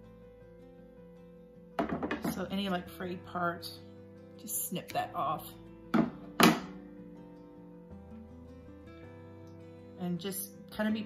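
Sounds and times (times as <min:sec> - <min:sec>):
acoustic guitar background music: 0:00.0 - 0:11.0.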